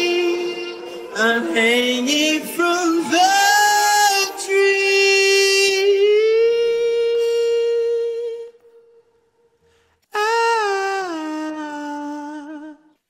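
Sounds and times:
man singing long wordless note: 0:00.0 - 0:09.2, 0:10.1 - 0:13.0.

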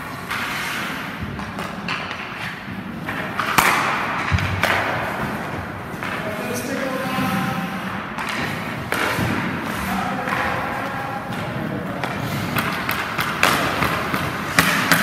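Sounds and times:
puck knocking on sticks and boards: 0:00.0 - 0:15.0
skates scraping on ice: 0:00.0 - 0:15.0.

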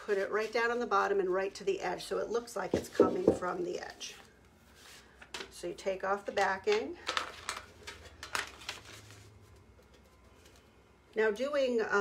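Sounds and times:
sheet crinkling and rustling: 0:07.0 - 0:10.7.

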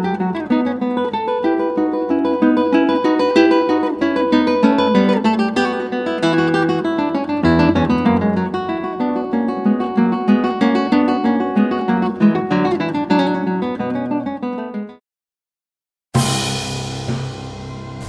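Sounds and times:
acoustic guitar playing: 0:00.0 - 0:15.0, 0:16.2 - 0:18.0.

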